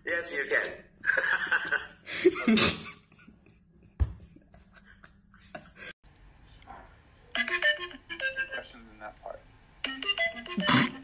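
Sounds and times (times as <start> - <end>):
electronic ringtone melody: 7.4 - 8.6.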